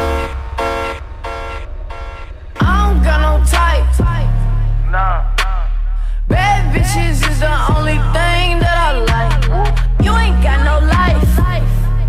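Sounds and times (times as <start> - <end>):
synth chord stabs: 0.0 - 5.3
deep bass note: 0.0 - 12.0.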